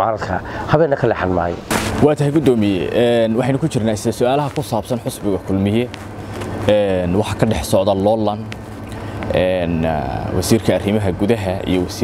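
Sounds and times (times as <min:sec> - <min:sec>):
man speaking: 0:00.0 - 0:06.0, 0:06.6 - 0:08.6, 0:09.3 - 0:12.0
steady low hum: 0:00.0 - 0:12.0.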